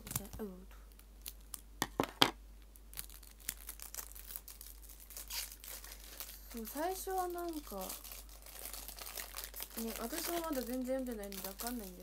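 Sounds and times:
packaging crinkling: 0:00.0 - 0:02.2, 0:02.8 - 0:12.0.

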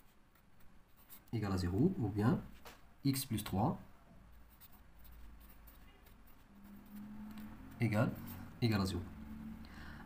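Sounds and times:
marker scratching on paper: 0:00.0 - 0:01.9, 0:04.3 - 0:08.6.

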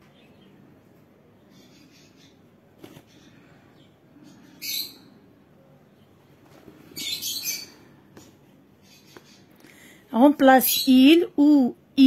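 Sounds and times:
high-pitched bird chirps: 0:04.5 - 0:05.2, 0:07.0 - 0:07.8.

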